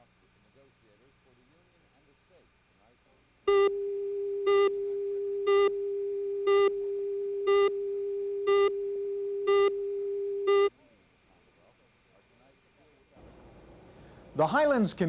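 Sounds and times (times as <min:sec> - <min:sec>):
buzzy beeps: 0:03.5 - 0:10.7
steady electronic tone: 0:03.5 - 0:10.7.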